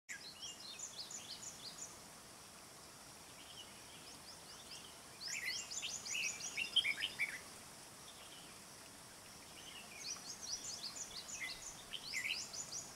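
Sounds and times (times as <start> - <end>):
bird singing whistled phrases: 5.3 - 7.4, 10.0 - 12.8.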